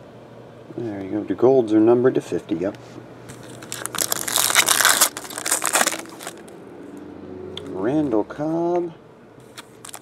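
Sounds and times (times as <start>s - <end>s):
foil wrapper crinkling: 3.3s - 6.5s, 9.5s - 10.0s.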